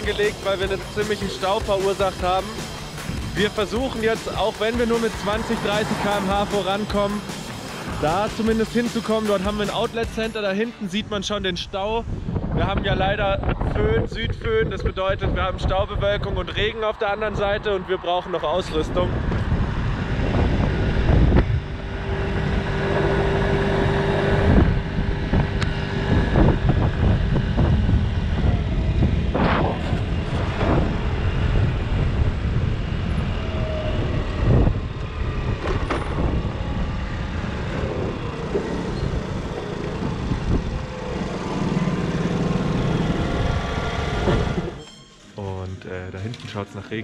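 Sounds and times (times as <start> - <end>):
wind on microphone: 11.1 - 44.8
scooter engine running: 31.0 - 44.8.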